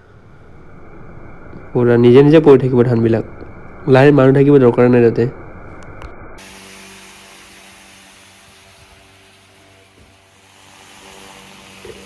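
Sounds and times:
electric motor humming: 6.4 - 12.0
hiss of blown air and grain: 6.4 - 12.0.

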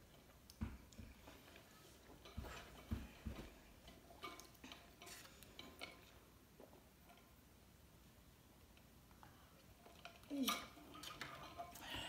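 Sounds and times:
faint table sounds: 0.1 - 7.4.

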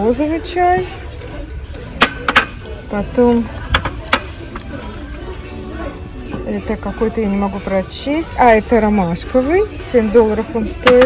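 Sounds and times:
background music: 0.0 - 11.0
shop interior hum: 0.0 - 11.0.

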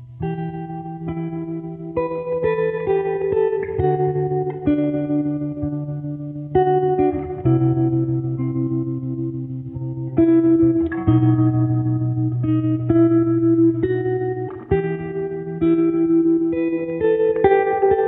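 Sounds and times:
guitar-led instrumental music: 0.0 - 18.0.

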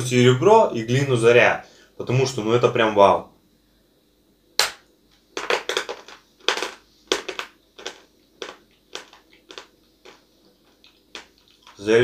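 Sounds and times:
crunching chews: 7.1 - 11.9.

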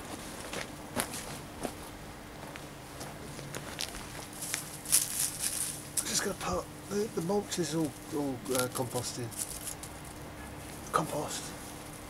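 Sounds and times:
hand brushing dry mulch: 3.6 - 9.8.

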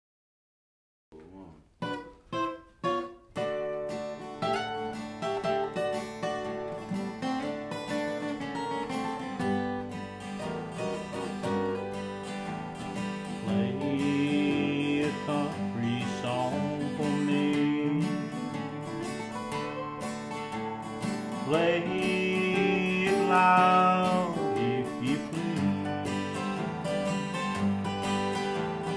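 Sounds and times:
acoustic guitars playing: 1.2 - 28.9.

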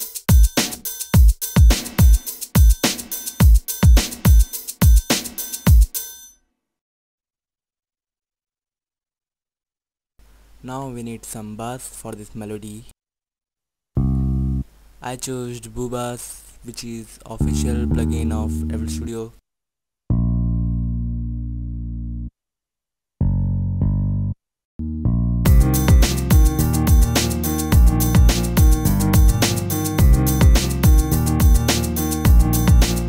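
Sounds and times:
programmed drum beat: 0.0 - 6.1, 25.5 - 33.0
synth bass notes: 14.0 - 14.7, 17.4 - 19.1, 20.1 - 22.3, 23.2 - 33.0.

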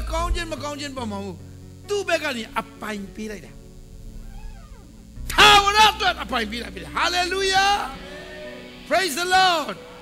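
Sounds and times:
man's voice: 0.0 - 3.6, 5.2 - 10.0
low keyboard chord: 0.0 - 10.0.

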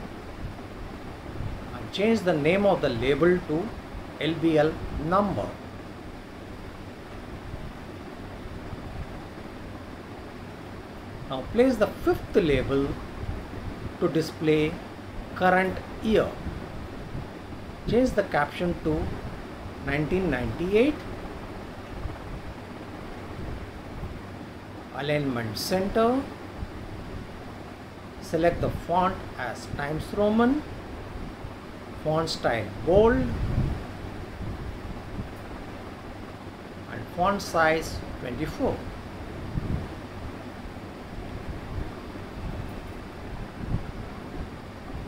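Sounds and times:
background hiss with low rumble: 0.0 - 45.0.

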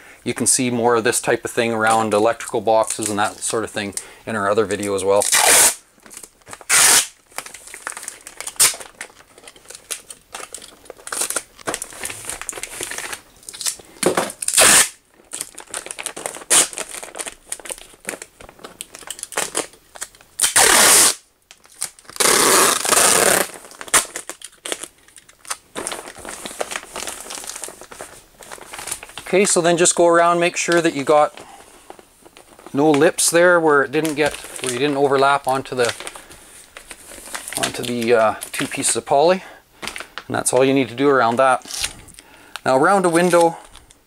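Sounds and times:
plastic sheeting crinkling: 0.3 - 44.0
tape peeled off roll: 5.2 - 13.8, 14.4 - 15.0, 15.9 - 29.9.

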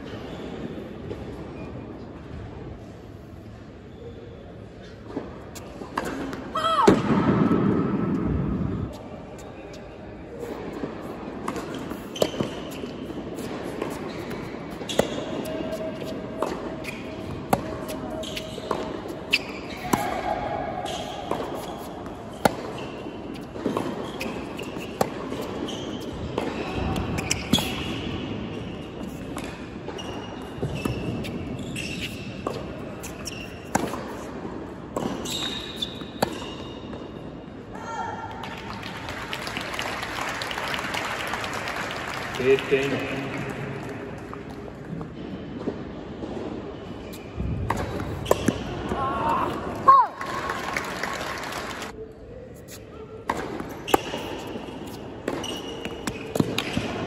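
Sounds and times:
tennis ball bouncing: 10.5 - 20.2, 20.9 - 28.2, 29.0 - 37.1, 47.4 - 49.0, 53.2 - 57.0
racket striking tennis ball: 10.6 - 20.2, 20.8 - 28.2, 30.5 - 37.1, 47.4 - 49.0, 53.2 - 57.0
crowd applause: 38.7 - 42.7, 50.2 - 51.9.

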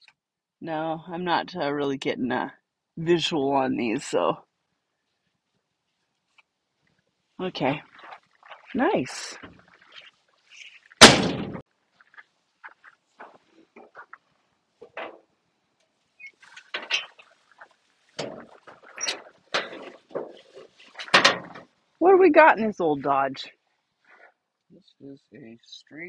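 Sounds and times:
truck door slamming: 11.0 - 11.6.

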